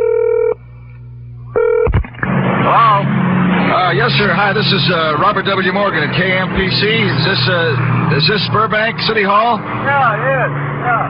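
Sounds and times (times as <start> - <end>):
short telephone tone: 0.0 - 0.6, 1.6 - 1.9
telephone tone: 0.0 - 0.6, 1.5 - 2.0.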